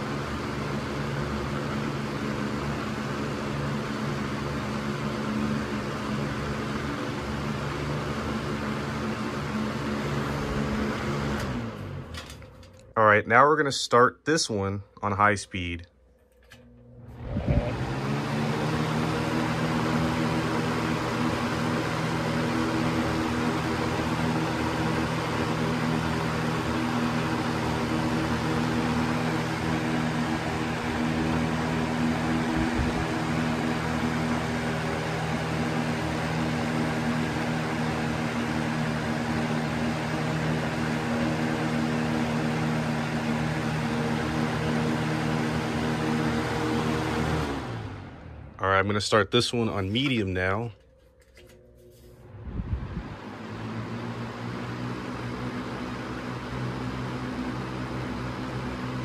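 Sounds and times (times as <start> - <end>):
box fan air rush and motor hum: 0.0 - 59.0.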